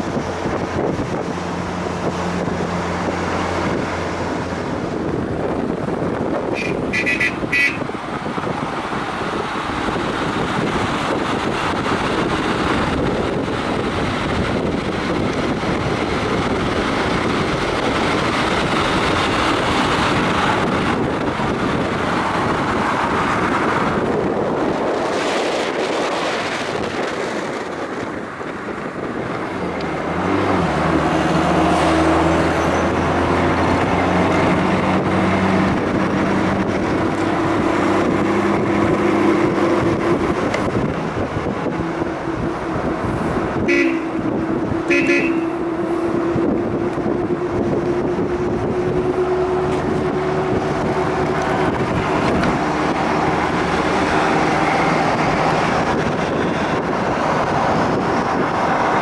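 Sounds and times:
car engine droning: 0.0 - 59.0
wind and road noise: 0.0 - 59.0.

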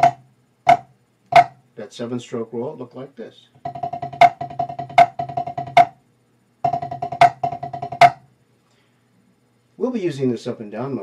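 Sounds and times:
drumstick rolls on practice pad: 0.0 - 1.6, 3.6 - 6.0, 6.6 - 8.3.

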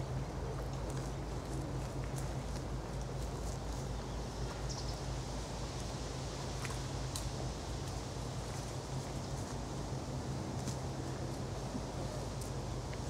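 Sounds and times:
steady low hum: 0.0 - 13.0
leaves rustling and twigs snapping: 0.4 - 4.7, 6.6 - 9.8, 10.4 - 13.0.

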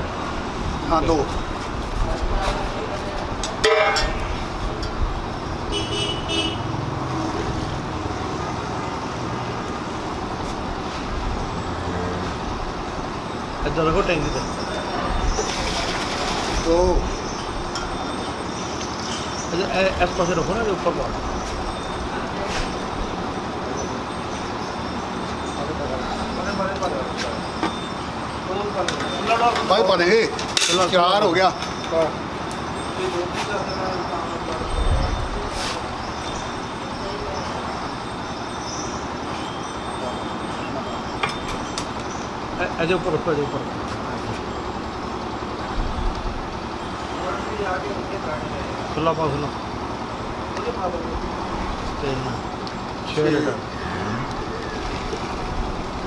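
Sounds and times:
distant talk: 0.0 - 56.0
faint voices: 46.3 - 56.0.

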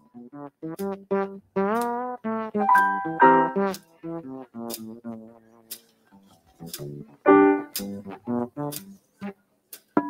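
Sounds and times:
electric keyboard music: 2.2 - 4.6, 7.2 - 8.8.

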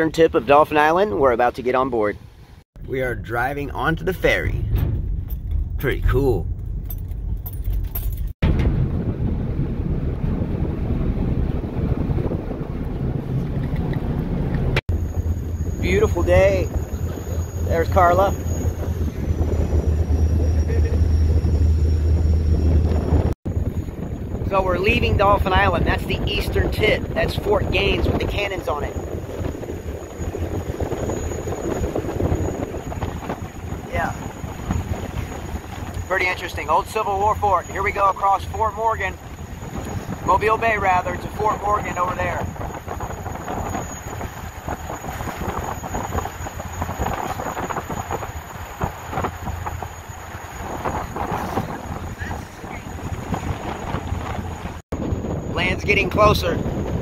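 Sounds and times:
steady low rumble: 0.0 - 57.0
wind buffeting microphone: 2.2 - 57.0
low rumble inside car: 2.8 - 23.4
water rushing past hull: 8.4 - 57.0.

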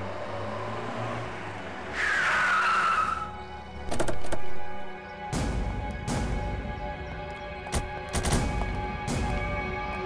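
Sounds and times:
tyres screeching: 1.9 - 4.6.

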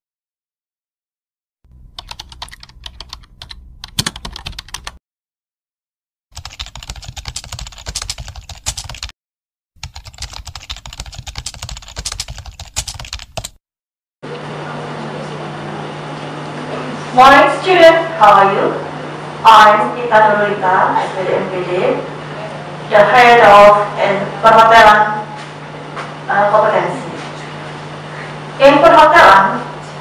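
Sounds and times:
low room hum: 1.7 - 5.0
keyboard typing clicks: 1.9 - 5.0, 6.4 - 9.1, 9.8 - 13.6.

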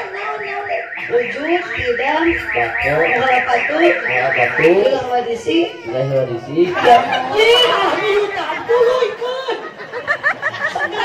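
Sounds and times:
electronic alarm warbling: 0.0 - 6.0, 6.8 - 9.2
people's voices: 0.0 - 11.0.

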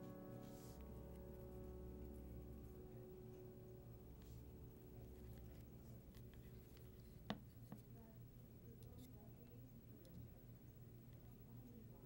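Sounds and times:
faint handling noises: 4.2 - 12.0.

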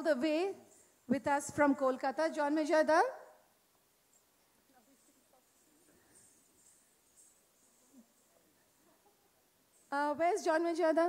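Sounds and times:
woman's amplified voice: 0.0 - 3.4, 9.9 - 11.0.

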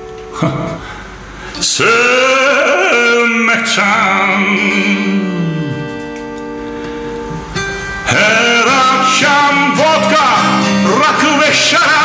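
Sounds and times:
acoustic guitar strum: 0.0 - 12.0.

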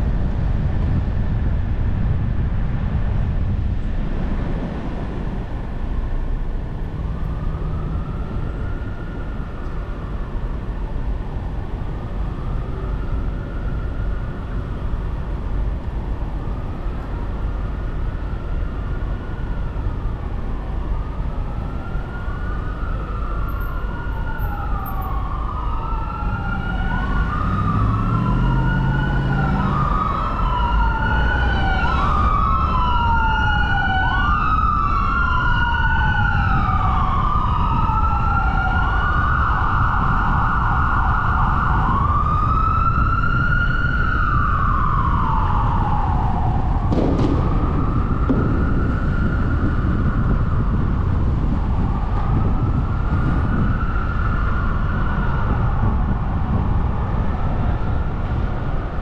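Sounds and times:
road traffic rumble: 0.0 - 59.0
emergency siren wailing: 5.7 - 59.0.

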